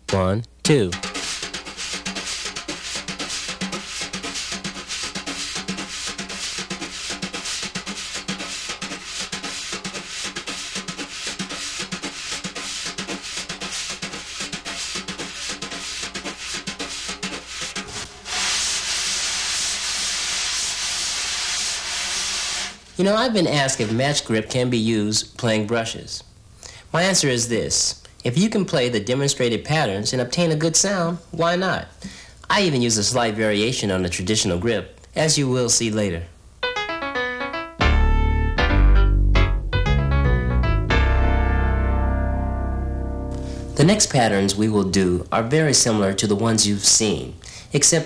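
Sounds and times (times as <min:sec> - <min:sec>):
wire brushes on snare drum: 0:00.1 - 0:24.7
steady brush hiss: 0:01.0 - 0:26.1, 0:43.4 - 0:44.8.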